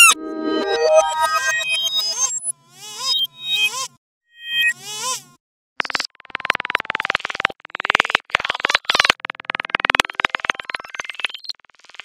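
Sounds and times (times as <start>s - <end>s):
steady high tones: 0.0s - 2.0s
rapid clicking pulses: 6.2s - 11.4s.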